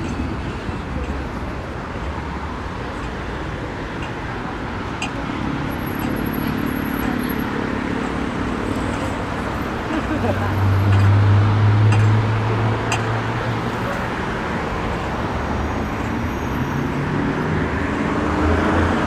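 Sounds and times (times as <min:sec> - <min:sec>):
large vehicle engine hum: 0:00.0 - 0:19.0
passing cars and tyre noise: 0:00.0 - 0:19.0.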